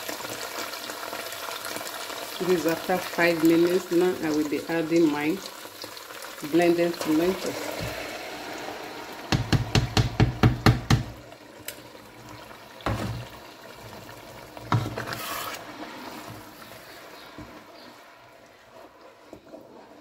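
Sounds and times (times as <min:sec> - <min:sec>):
low sizzle: 0:00.0 - 0:20.0
plastic container knocking on pot: 0:09.3 - 0:11.2, 0:12.8 - 0:13.4
wooden spoon stirring stew: 0:13.2 - 0:20.0.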